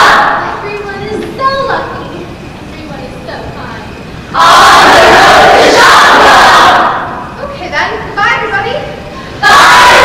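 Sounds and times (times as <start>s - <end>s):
crowd shouting and cheering: 0.0s - 0.6s, 4.4s - 7.3s, 9.4s - 10.0s.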